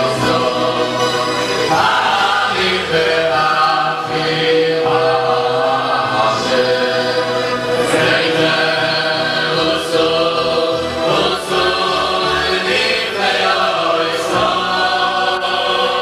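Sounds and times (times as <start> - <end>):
group of men singing: 0.0 - 16.0.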